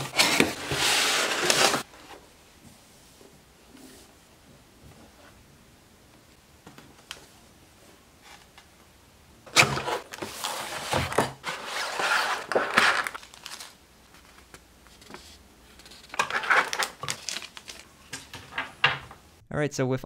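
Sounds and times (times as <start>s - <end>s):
packaging crinkling and rustling: 9.5s - 18.6s.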